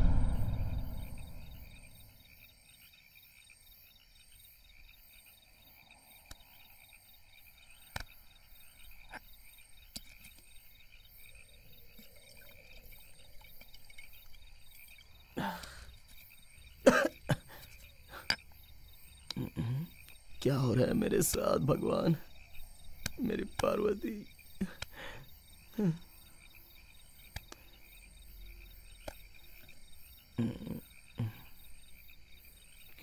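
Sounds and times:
crickets chirping: 0.0 - 33.0
man coughing: 16.9 - 17.6.

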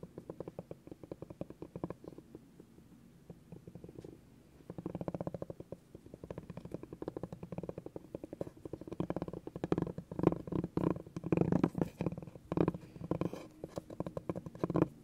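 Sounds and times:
spiky ball rolling on wooden board: 3.3 - 15.0.

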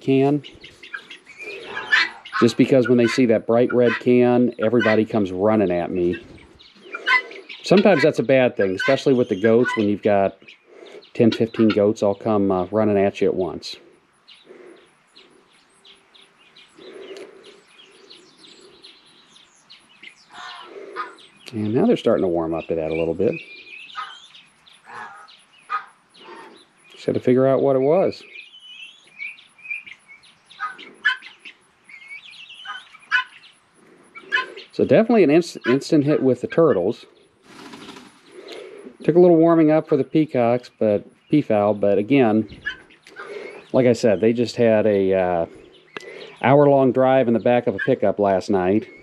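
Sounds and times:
loud bird call: 0.0 - 11.9, 14.3 - 36.9, 42.2 - 44.3, 45.5 - 46.6
birds chirping: 0.0 - 49.0
hens clucking softly: 0.4 - 12.0, 20.0 - 22.0, 24.8 - 26.6, 32.6 - 36.9, 42.3 - 43.7.

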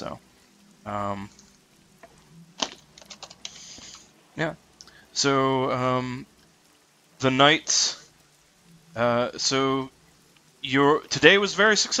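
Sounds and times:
keyboard keys clicking: 2.6 - 3.6.

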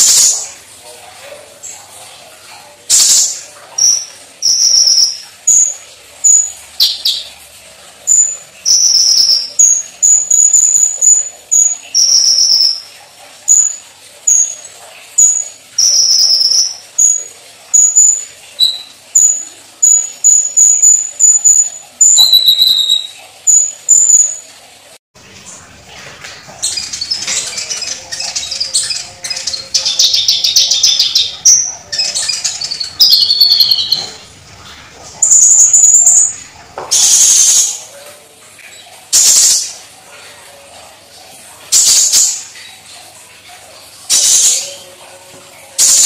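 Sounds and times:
sunbird chirping: 3.8 - 7.3, 8.1 - 12.8, 15.2 - 24.4, 26.2 - 34.3, 35.2 - 37.8.

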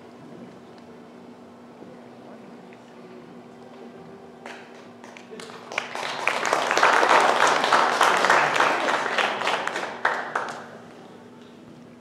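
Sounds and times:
crowd applauding: 5.0 - 10.8.

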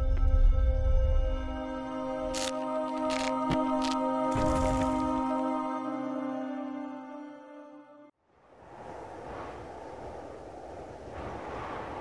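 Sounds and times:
rushing wind with low rumble: 8.3 - 12.0.

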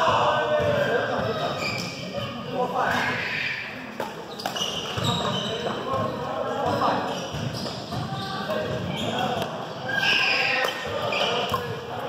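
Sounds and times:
sneakers squeaking on floor: 0.1 - 12.0
racket hitting shuttlecock: 3.9 - 5.3.

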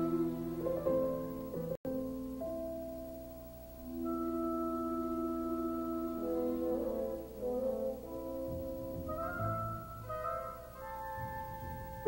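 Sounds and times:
orchestra playing softly: 0.0 - 12.0.

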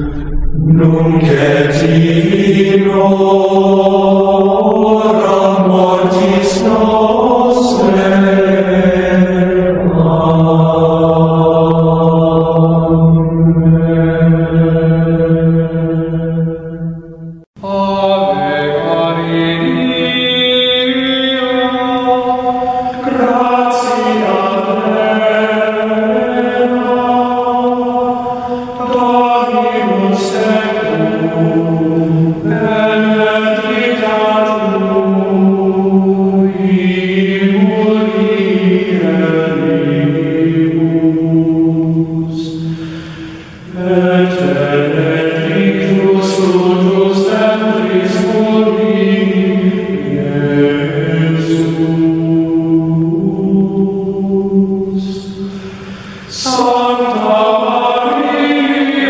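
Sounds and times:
voices chanting: 0.0 - 16.6, 17.6 - 59.0.

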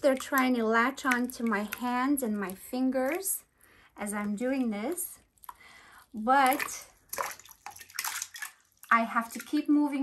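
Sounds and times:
water splashing in plastic tub: 0.0 - 3.4, 4.1 - 10.0.

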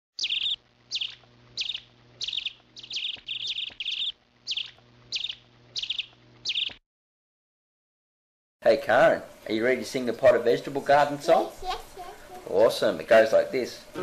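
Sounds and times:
bird chirping: 0.2 - 6.8.

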